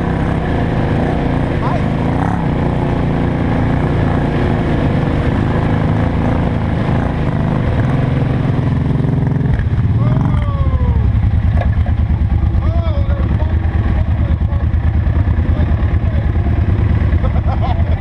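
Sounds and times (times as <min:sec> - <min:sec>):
atv engine driving through mud: 0:00.0 - 0:18.0.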